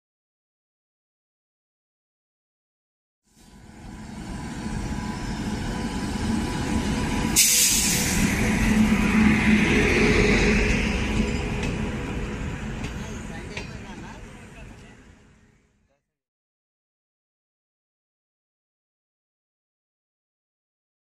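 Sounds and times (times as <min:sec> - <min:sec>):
train wheels rumbling: 0:03.6 - 0:15.4
air hiss: 0:07.4 - 0:08.4.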